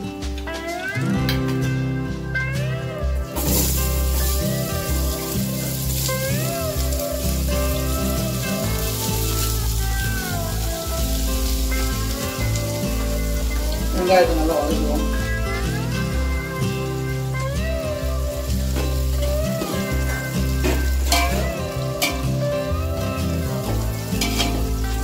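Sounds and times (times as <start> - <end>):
background music: 0.0 - 25.0
onions sizzling in hot oil: 3.3 - 25.0.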